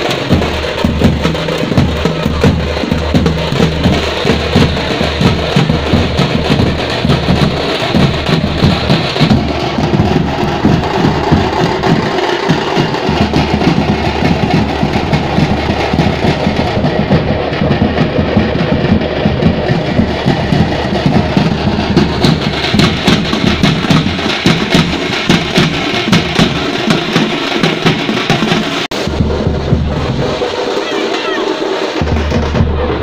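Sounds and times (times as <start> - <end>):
large drums beating: 0.0 - 33.0.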